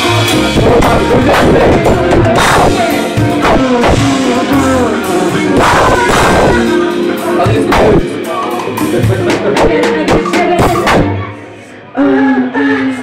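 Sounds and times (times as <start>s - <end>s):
drum kit beat: 0.0s - 11.4s
bass line: 0.0s - 11.6s
live soul band playing: 0.0s - 11.9s
person singing: 0.0s - 13.0s.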